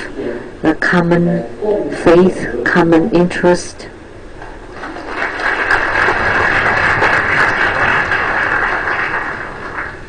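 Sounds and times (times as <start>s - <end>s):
audience applauding: 4.7s - 10.0s.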